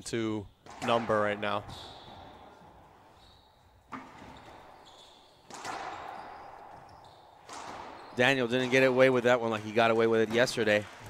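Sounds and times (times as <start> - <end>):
racquetball ball hits echoing: 0.6 - 11.0.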